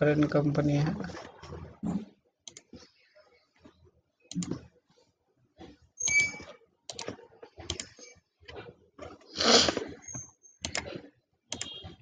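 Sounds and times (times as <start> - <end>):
sharp computer clicks: 6.0 - 8.2, 9.7 - 11.9.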